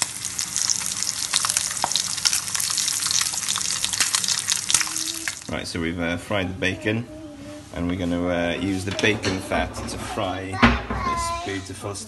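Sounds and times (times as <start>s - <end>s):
bacon sizzling in a frying pan: 0.0s - 5.5s.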